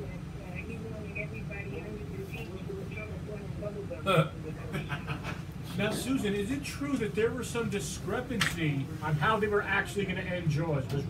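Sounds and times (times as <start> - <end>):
low wordless voices: 0.0 - 11.0
steady low hum: 0.0 - 11.0.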